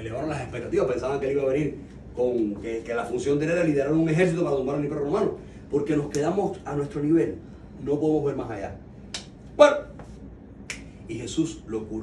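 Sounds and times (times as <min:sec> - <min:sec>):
finger snaps: 0:09.1 - 0:09.4, 0:10.0 - 0:11.0.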